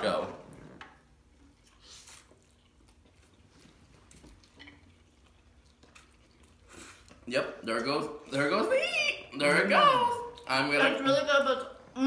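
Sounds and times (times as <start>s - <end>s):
faint chewing noodles: 0.5s - 7.3s.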